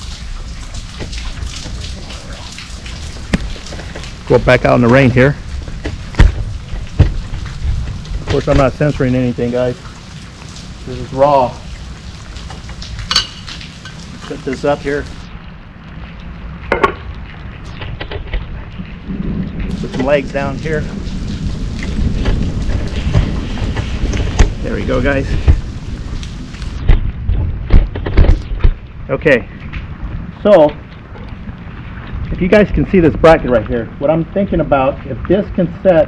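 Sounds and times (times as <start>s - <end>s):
steady rain falling: 0.0s - 36.0s
low rumble: 14.8s - 35.3s.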